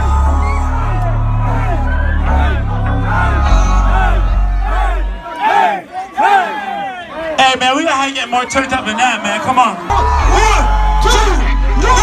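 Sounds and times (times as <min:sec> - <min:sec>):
bass-heavy hip-hop track: 0:00.0 - 0:05.4, 0:09.9 - 0:12.0
crowd shouting and yelling: 0:00.0 - 0:12.0.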